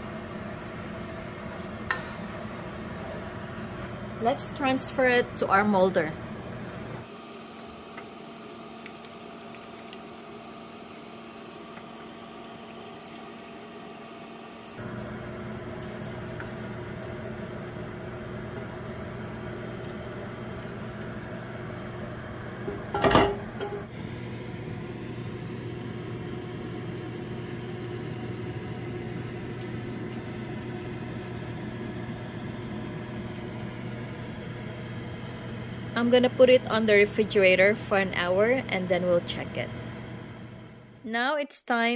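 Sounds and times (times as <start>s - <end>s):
low kitchen hum: 0.0s - 41.9s.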